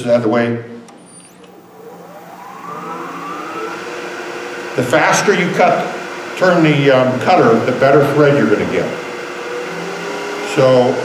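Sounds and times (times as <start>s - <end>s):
lathe motor whine rising: 0.8s - 11.0s.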